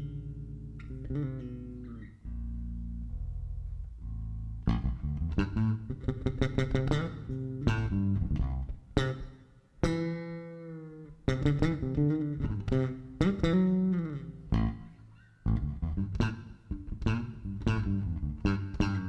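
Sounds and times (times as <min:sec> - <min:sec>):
electric bass guitar: 0:00.0 - 0:19.0.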